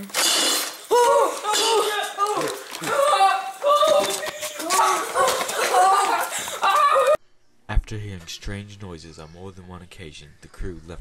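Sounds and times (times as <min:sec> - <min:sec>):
child crying out: 0:00.9 - 0:07.2.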